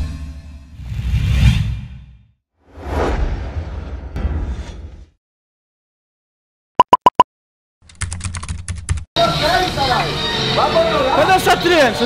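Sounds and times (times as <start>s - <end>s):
short high beeps: 6.8s - 7.2s.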